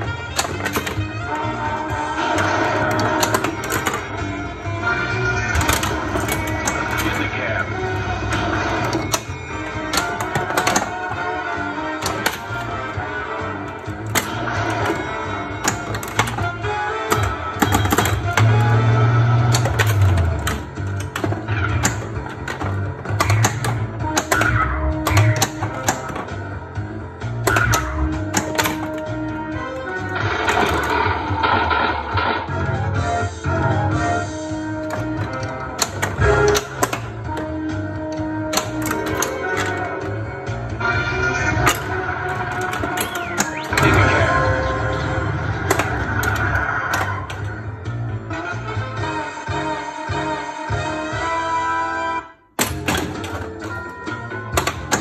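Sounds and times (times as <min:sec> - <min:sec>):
pinball machine game music: 0:00.0 - 0:55.0.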